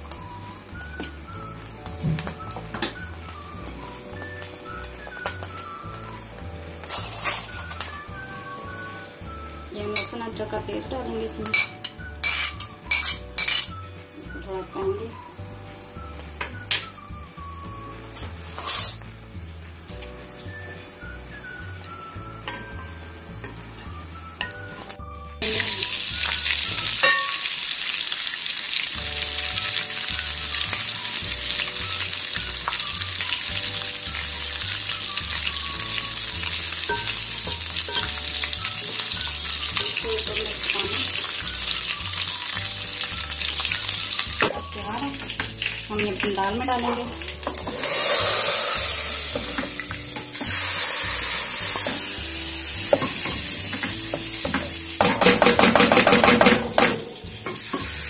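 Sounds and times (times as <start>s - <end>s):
garlic frying in hot oil: 0.0s - 58.0s.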